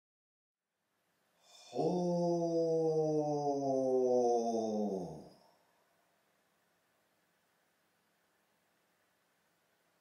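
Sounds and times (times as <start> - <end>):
low chanted drone: 1.5 - 5.4.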